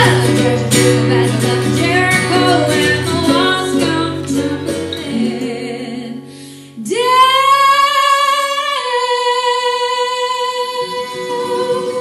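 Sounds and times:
acoustic guitar: 0.0s - 12.0s
mandolin: 0.0s - 12.0s.

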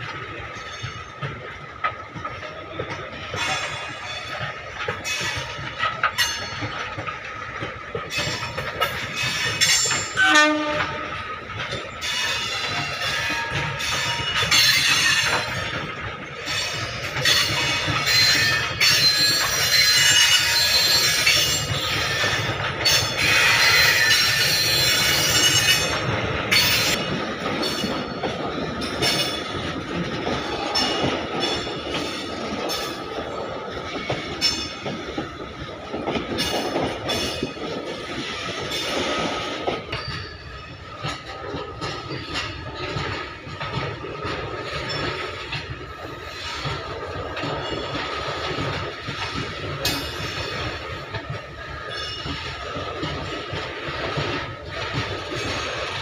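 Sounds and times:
wheels clacking over rail joints: 0.0s - 56.0s
train wheels squealing: 11.7s - 15.8s, 16.4s - 29.5s.

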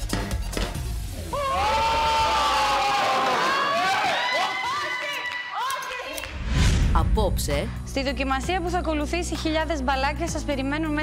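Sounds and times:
deep booming music: 6.4s - 9.0s.

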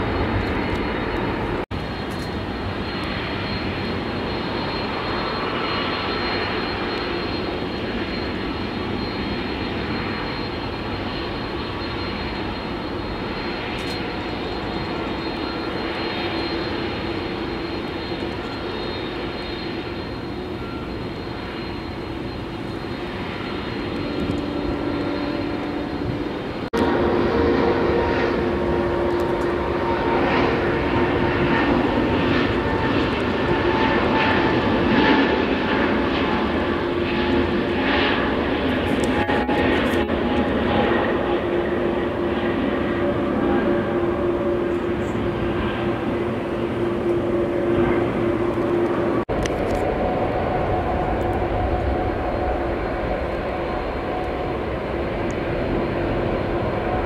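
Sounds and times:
jet engines whining: 0.0s - 57.0s.

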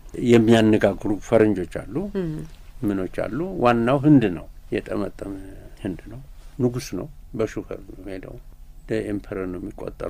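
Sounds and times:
person talking: 0.2s - 8.3s.

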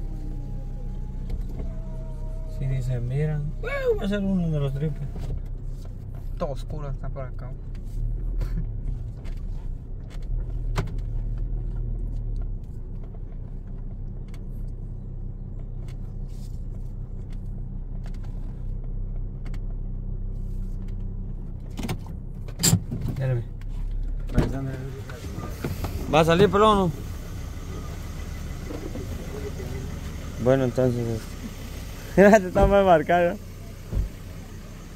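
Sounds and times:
car engine and tyres rumbling: 0.0s - 34.9s.

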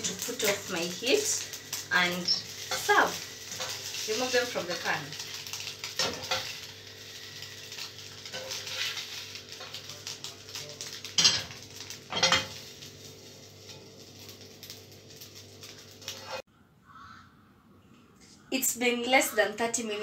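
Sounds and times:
spatula scraping frying pan: 5.9s - 6.7s, 7.6s - 9.8s, 16.0s - 16.4s.

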